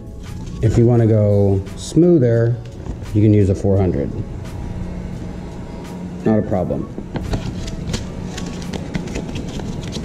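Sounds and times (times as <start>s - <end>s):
faint hum: 0.0s - 10.0s.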